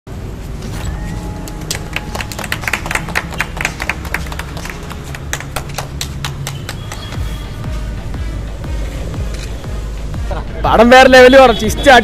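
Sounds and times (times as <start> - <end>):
people clapping: 1.2 - 7.4.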